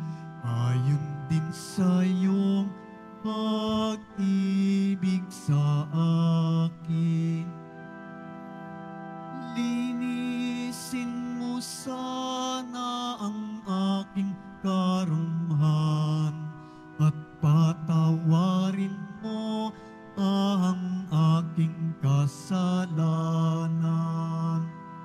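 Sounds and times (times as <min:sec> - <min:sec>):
held accompanying chords: 0:00.0 - 0:25.0
person singing a hymn: 0:00.0 - 0:25.0.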